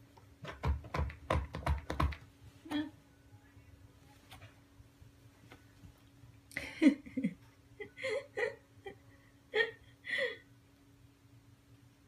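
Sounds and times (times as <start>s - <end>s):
dog claws tapping and scratching: 0.4s - 2.2s.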